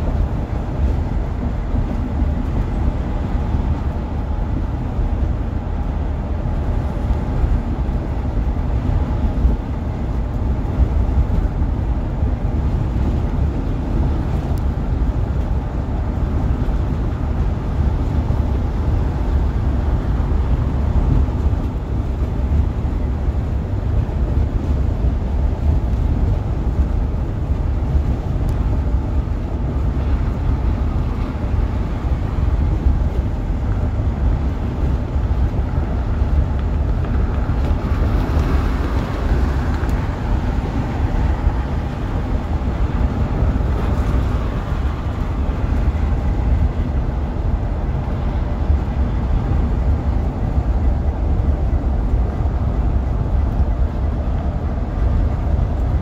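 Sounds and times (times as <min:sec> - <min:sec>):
bus engine and tyres rumbling: 0:00.0 - 0:56.0.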